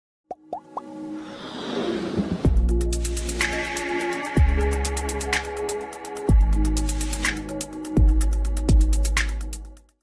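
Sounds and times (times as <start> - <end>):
electronic music: 2.5 - 9.8.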